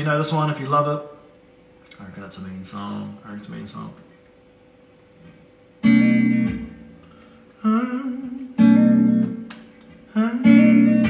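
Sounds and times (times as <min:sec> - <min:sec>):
electric guitar chord strummed: 0:05.8 - 0:07.0, 0:08.6 - 0:09.5, 0:10.3 - 0:11.0.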